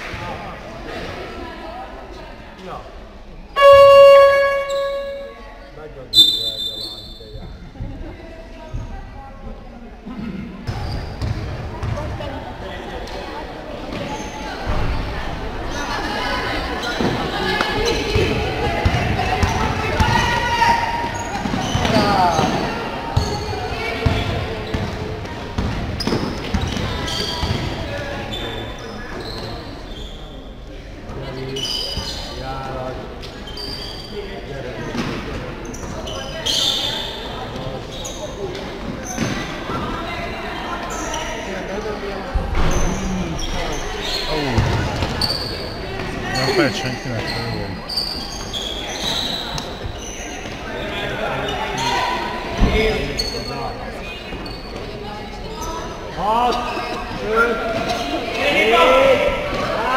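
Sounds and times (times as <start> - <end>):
basketball bouncing in hall: 10.6 - 12.4, 16.8 - 28.5, 44.4 - 46.4.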